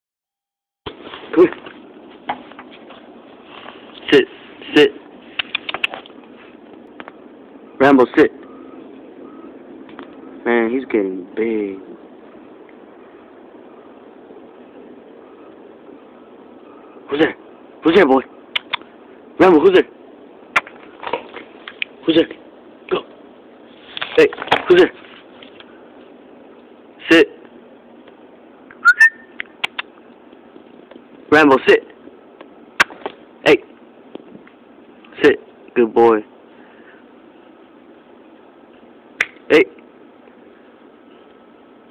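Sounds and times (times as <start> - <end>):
faint background noise: 0.9 - 41.9
man giving command: 4.1 - 5.0, 17.1 - 18.3, 19.4 - 19.9, 22.0 - 23.1, 27.0 - 27.4, 31.3 - 31.9, 35.1 - 36.3, 39.5 - 39.8
person clicking tongue: 5.4 - 6.0, 18.5 - 18.8, 29.0 - 29.9
faint beeps: 8.4 - 9.6
person whistling: 28.8 - 29.4.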